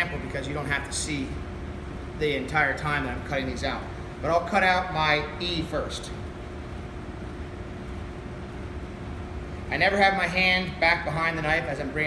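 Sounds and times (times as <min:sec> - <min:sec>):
ventilation hum and hiss: 0:00.0 - 0:12.0.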